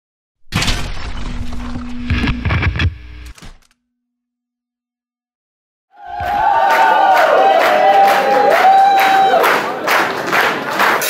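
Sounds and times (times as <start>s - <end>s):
steady hum: 1.6s - 3.4s.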